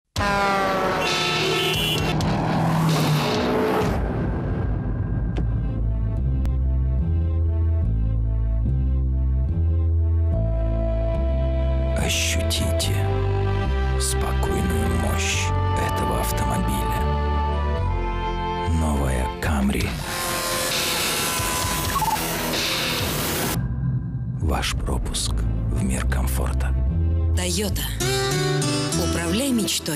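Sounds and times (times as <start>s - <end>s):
soundtrack music: 0.2s - 29.9s.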